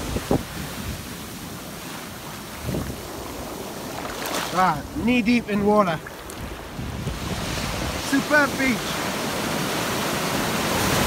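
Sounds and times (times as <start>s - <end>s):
wind buffeting microphone: 0.0s - 1.7s, 2.4s - 11.0s
ocean surf washing in: 0.0s - 11.0s.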